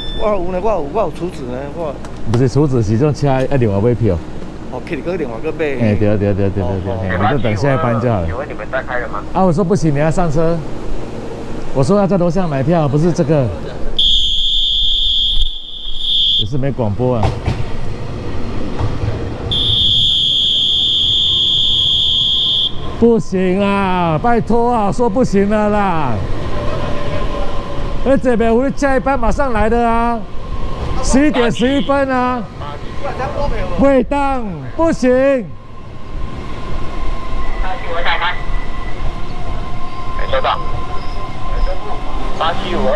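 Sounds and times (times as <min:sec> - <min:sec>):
high-pitched whistle blast: 0:00.0 - 0:00.4, 0:14.0 - 0:16.6, 0:19.5 - 0:22.9
train rumbling: 0:00.0 - 0:14.0, 0:16.7 - 0:20.3, 0:21.0 - 0:42.9.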